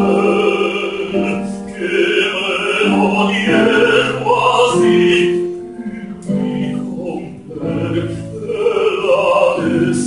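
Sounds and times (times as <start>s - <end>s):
baritone singing: 0.0s - 10.0s
grand piano accompaniment: 0.0s - 10.0s.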